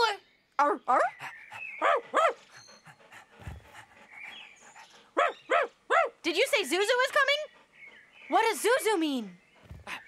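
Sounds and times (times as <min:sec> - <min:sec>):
cartoon dog barks and yips: 0:05.2 - 0:06.2.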